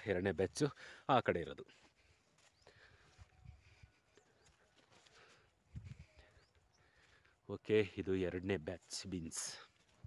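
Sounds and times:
footsteps on soil path: 0:00.0 - 0:10.0.

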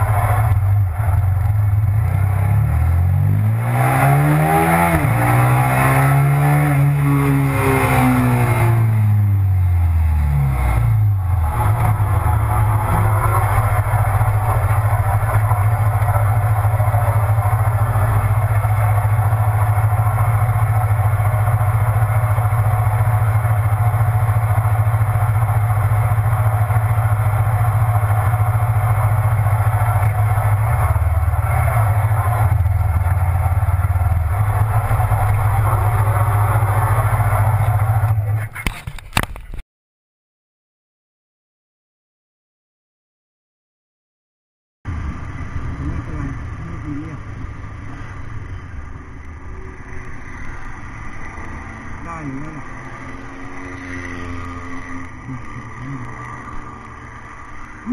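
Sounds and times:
motorcycle engine idling: 0:00.0 - 0:03.1, 0:11.0 - 0:38.7.

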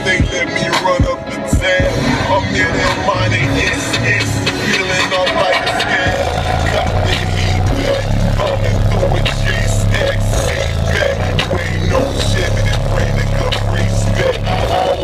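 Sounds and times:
hip-hop music through car audio: 0:00.0 - 0:15.0
deep subwoofer bass: 0:01.0 - 0:15.0.

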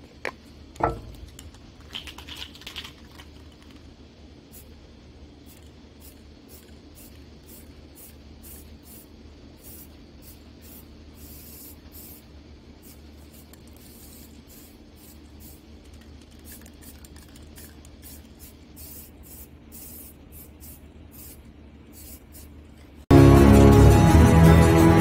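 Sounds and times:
aerosol can mixing ball rattling: 0:00.2 - 0:03.9, 0:13.3 - 0:19.4
spray hiss: 0:05.4 - 0:22.6.

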